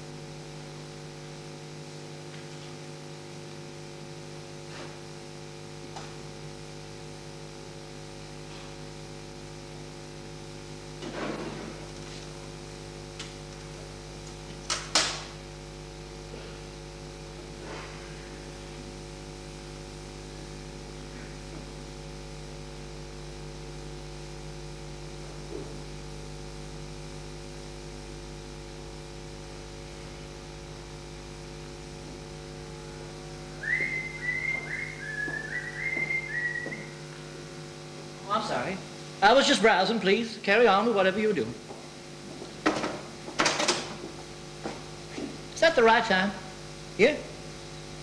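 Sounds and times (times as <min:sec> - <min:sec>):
electrical mains hum: 0:00.0 - 0:48.0.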